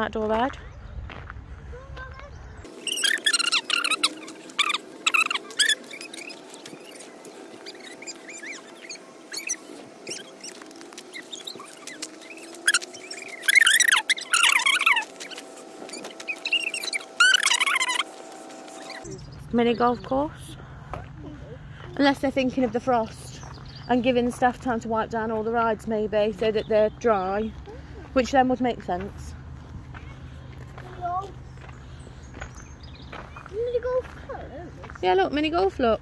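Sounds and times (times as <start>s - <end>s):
small birds chirping: 0.4s - 36.0s.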